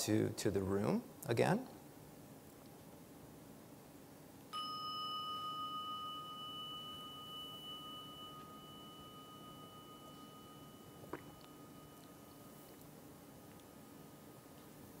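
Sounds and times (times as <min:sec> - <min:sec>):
meditation bell ringing: 0:04.5 - 0:14.5.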